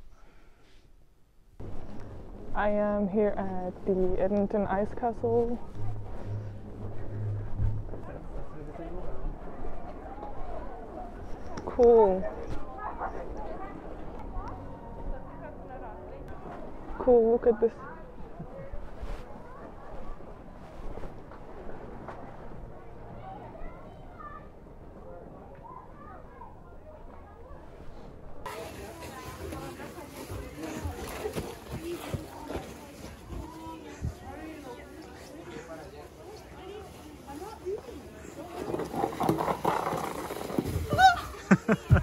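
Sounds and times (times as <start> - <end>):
low outdoor rumble: 1.5 - 11.5
low hum: 1.6 - 11.4
people chattering: 2.6 - 42.0.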